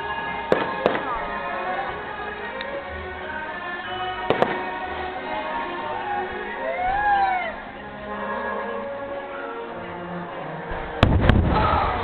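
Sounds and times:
music playing: 0.0 - 12.0
fireworks bangs: 0.4 - 1.2, 4.2 - 4.9, 11.0 - 12.0.

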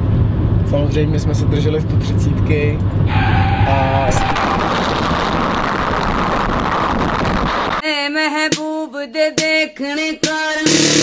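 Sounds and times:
road and wind noise while driving: 0.0 - 7.8
music with singing voice: 7.8 - 11.0.

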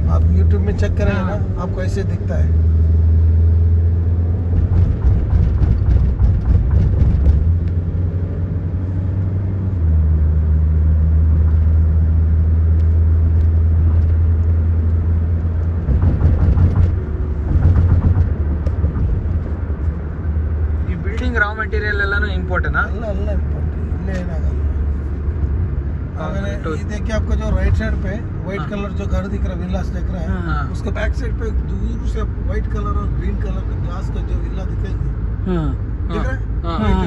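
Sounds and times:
car engine and road noise: 0.0 - 37.0.

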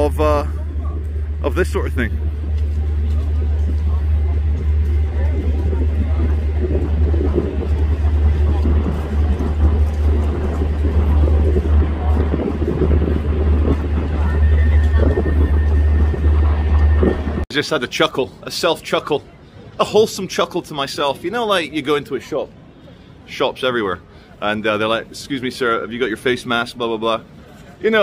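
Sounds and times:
indistinct voices: 0.0 - 17.4
traffic rumble: 0.0 - 28.0.

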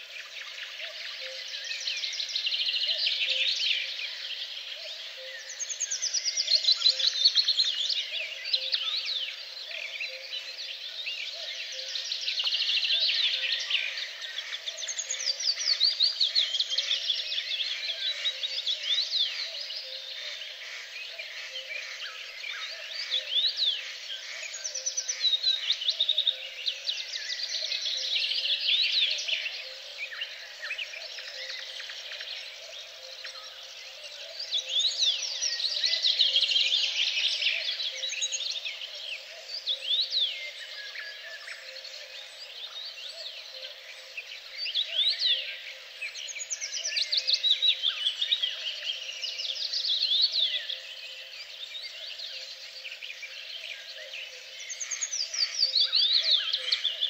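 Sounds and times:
songbirds singing: 0.0 - 57.0.

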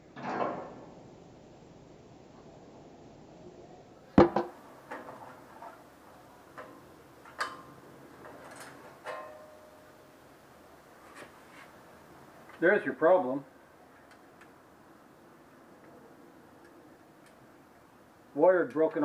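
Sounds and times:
sharp knock on metal: 4.2 - 4.5.

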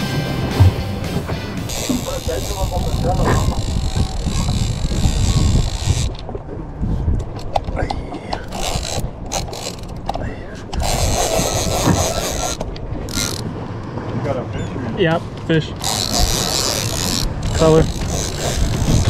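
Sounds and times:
fishing reel clicking: 1.7 - 6.2, 8.5 - 10.0, 10.8 - 13.4, 15.8 - 19.0.

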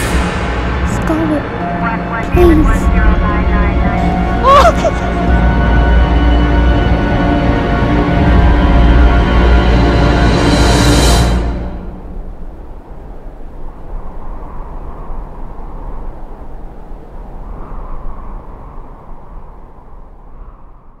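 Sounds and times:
dark trailer music chord: 0.0 - 12.2
low rumbling drone: 0.0 - 13.9.

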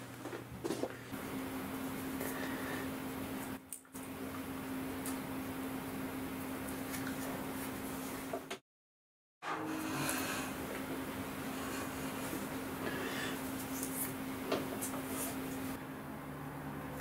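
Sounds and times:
steady hum: 0.0 - 8.5, 9.4 - 17.0.

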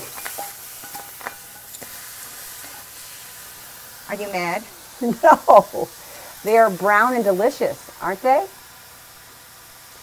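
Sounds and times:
mushrooms sizzling in a skillet: 0.0 - 10.0.

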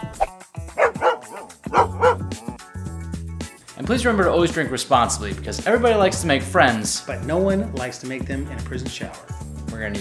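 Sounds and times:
background music: 0.0 - 10.0
dog barking: 0.8 - 2.5.

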